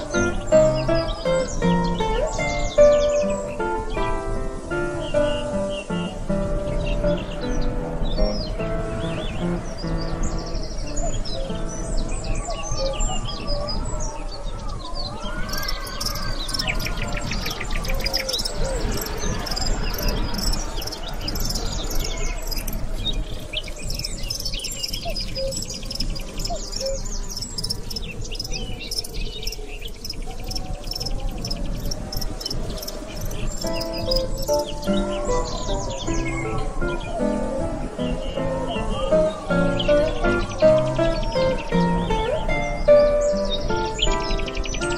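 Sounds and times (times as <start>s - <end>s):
soft background music: 0.0s - 15.3s, 31.6s - 44.9s
birds chirping and trilling: 0.0s - 44.9s.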